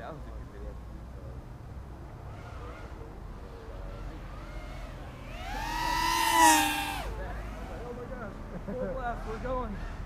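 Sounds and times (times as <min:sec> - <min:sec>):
quadcopter propellers whining: 0:03.4 - 0:08.0.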